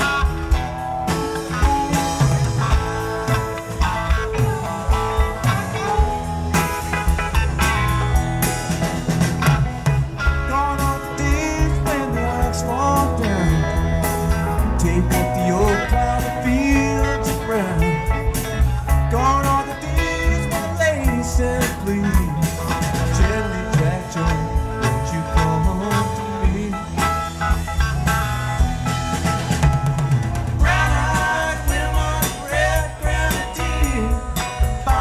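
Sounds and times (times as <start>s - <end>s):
bass guitar: 0.0s - 35.0s
drums: 0.0s - 35.0s
electric guitar lead bending notes: 0.0s - 35.0s.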